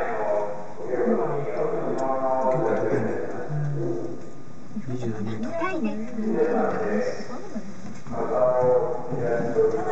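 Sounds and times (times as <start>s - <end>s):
people talking: 0.0s - 4.1s, 4.8s - 9.9s.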